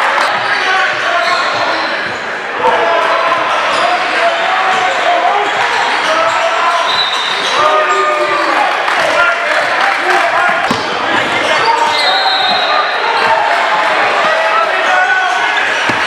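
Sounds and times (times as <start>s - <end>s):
overlapping voices in a hall: 0.0s - 16.0s
basketball bouncing on gym floor: 10.6s - 11.4s, 15.8s - 16.0s.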